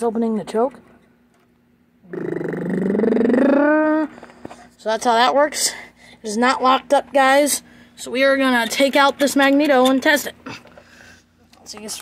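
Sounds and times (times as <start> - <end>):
person humming or groaning: 2.0 - 4.2.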